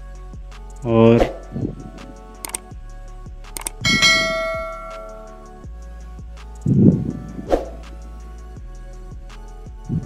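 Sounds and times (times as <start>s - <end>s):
quick clicks: 2.4s - 2.7s, 3.6s - 3.8s
bell chime: 3.8s - 5.4s.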